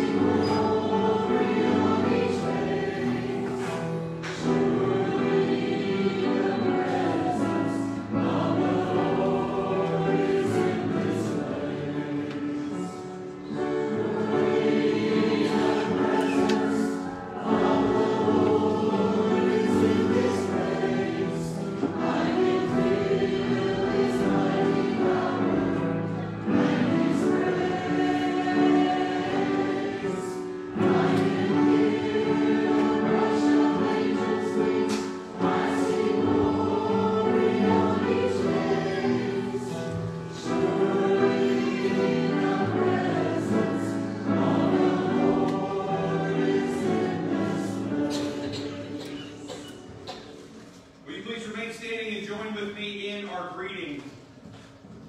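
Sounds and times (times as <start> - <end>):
choir singing a hymn: 0.0 - 51.2.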